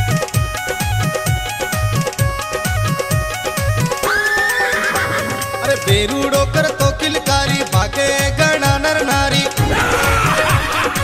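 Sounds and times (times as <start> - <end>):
folk music with drumbeat: 0.0 - 11.0
horse whinnying: 4.0 - 5.8.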